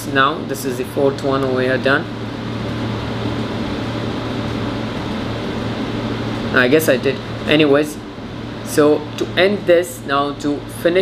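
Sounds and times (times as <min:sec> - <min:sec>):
air conditioning hum and hiss: 0:00.0 - 0:11.0.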